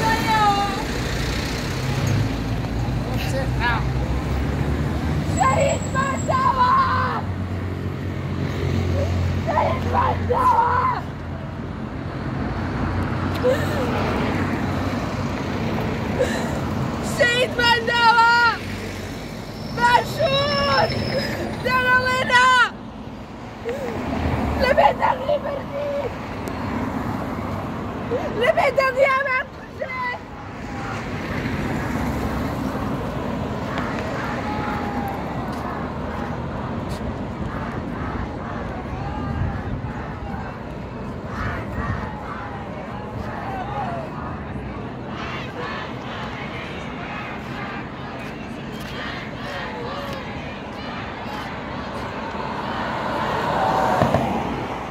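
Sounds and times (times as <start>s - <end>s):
woman chanting protest slogans: 0.0s - 1.0s, 5.3s - 7.3s, 17.0s - 18.7s, 19.7s - 22.8s, 24.5s - 26.2s, 28.2s - 31.1s, 37.5s - 52.1s
road traffic rumble: 0.0s - 54.9s
person shouting slogan: 5.3s - 7.3s, 17.0s - 18.6s, 21.6s - 22.8s, 24.6s - 26.1s.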